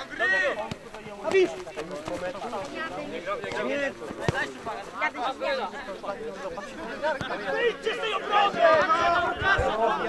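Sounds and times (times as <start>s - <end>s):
men calling and talking: 0.0s - 10.0s.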